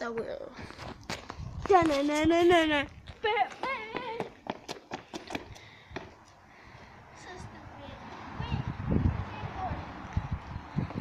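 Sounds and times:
child running footsteps on tarmac: 0.8s - 6.9s.

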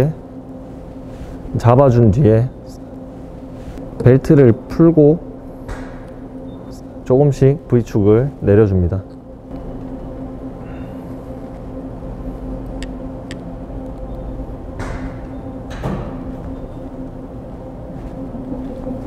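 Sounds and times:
low hum with two-note drone: 0.0s - 19.0s.

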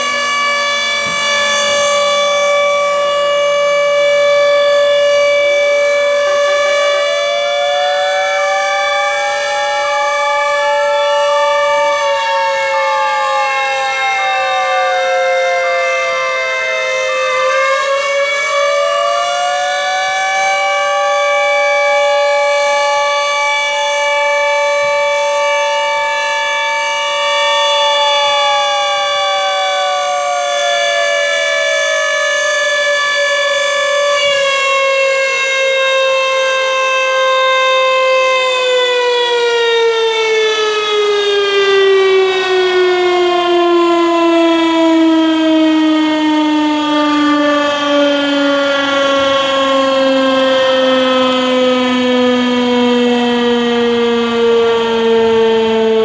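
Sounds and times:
fire engine sirens: 0.0s - 56.0s.

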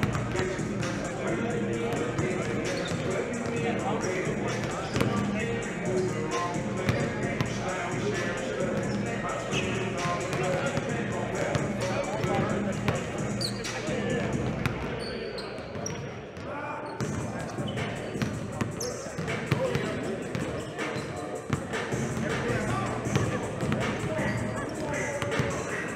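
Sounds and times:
indistinct voices: 0.0s - 15.6s, 16.4s - 25.9s
basketballs bouncing on gym floor: 4.9s - 5.2s, 25.2s - 25.6s.

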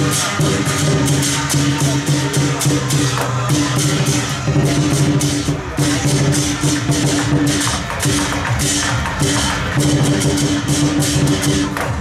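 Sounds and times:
gong: 0.0s - 11.8s
cymbals crashing: 0.0s - 12.0s
drum: 0.0s - 12.0s.

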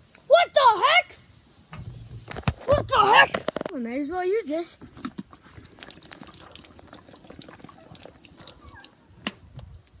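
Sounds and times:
water splashing and dripping: 5.5s - 10.0s.

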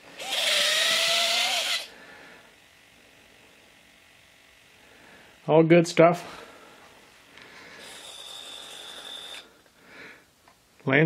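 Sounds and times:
electric motors whining: 0.0s - 5.4s, 6.8s - 9.7s.

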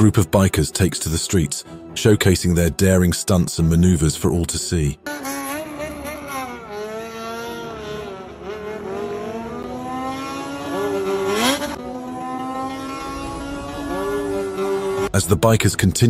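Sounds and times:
motorcycle engines revving: 5.0s - 15.2s.

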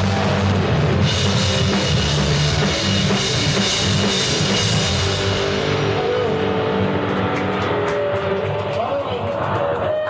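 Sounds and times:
distorted electric guitars ringing: 0.0s - 9.0s.

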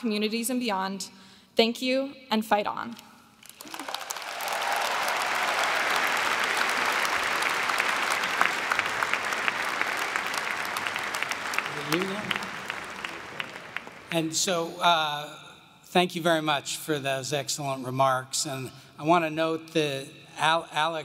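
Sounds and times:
large audience applauding: 3.4s - 14.3s.

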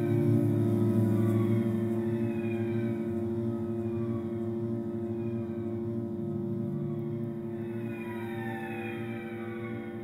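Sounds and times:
ambient cello music: 0.0s - 10.0s.

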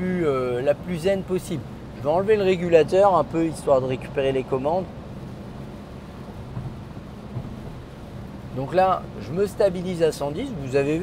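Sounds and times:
car engine drone: 0.0s - 11.0s
tyres on wet road: 0.0s - 11.0s.

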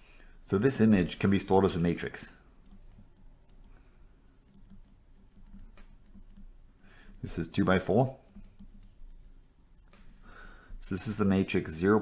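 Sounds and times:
stylus tapping on tablet screen: 4.4s - 7.2s, 8.2s - 9.2s.

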